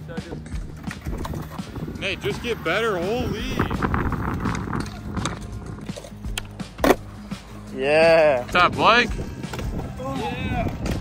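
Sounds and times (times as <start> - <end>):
music with steady beat: 4.6 - 11.0.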